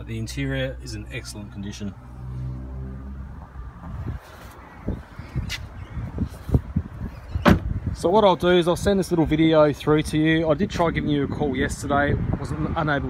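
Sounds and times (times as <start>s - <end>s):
car door shutting: 7.3s - 7.8s.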